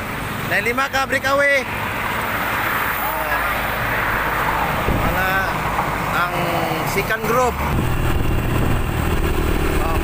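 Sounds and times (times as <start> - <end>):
passing vehicles and bicycles: 0.0 - 10.0
road noise: 0.0 - 10.0
wind on microphone: 7.7 - 9.7.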